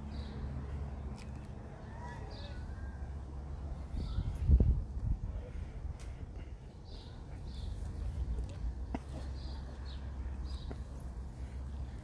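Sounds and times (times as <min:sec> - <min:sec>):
low outdoor rumble: 0:00.0 - 0:12.0
small birds chirping: 0:00.0 - 0:12.0.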